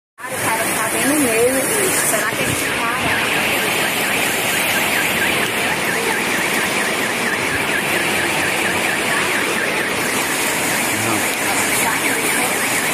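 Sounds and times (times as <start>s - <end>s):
car alarm warbling: 0.2s - 12.9s
heavy rain: 0.2s - 12.9s
rushing floodwater: 0.2s - 12.9s.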